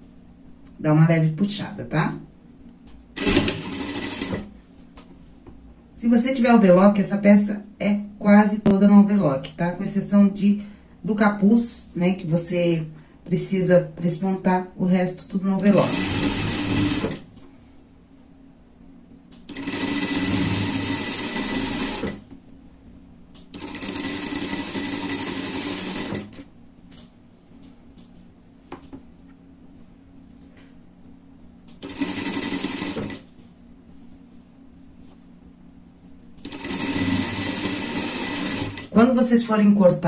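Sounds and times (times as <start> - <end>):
sewing machine whirring: 3.2 - 4.5, 15.6 - 17.3, 19.5 - 22.2, 23.5 - 26.5, 31.8 - 33.3, 36.4 - 39.2.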